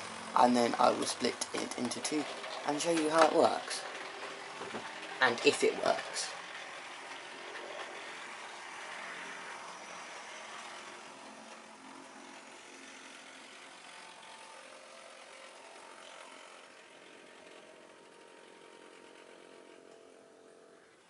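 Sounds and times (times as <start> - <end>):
model train wheels rolling on rails: 0.0 - 21.0
small electric motor whirring: 0.0 - 21.0.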